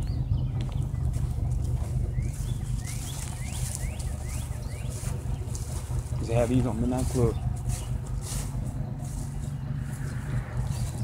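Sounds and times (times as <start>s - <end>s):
bird chirping: 0.0s - 11.0s
steady low rumble: 0.0s - 11.0s.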